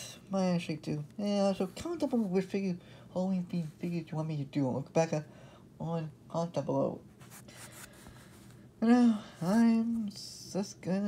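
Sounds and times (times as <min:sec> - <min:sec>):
person speaking: 0:00.0 - 0:11.0
hand rubbing across tabletop: 0:07.1 - 0:08.6.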